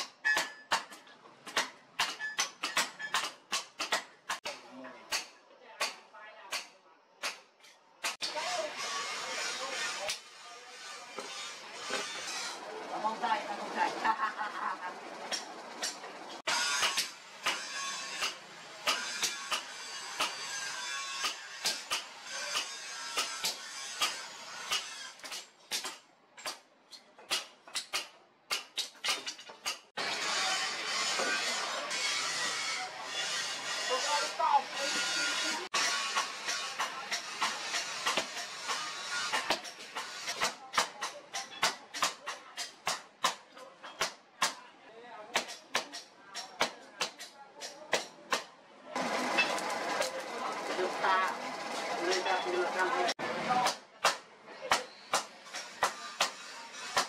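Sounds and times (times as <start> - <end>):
hammer striking steel on anvil: 0.0 - 8.4, 15.3 - 26.6, 35.7 - 44.6, 53.6 - 57.0
dense background noise: 29.7 - 57.0.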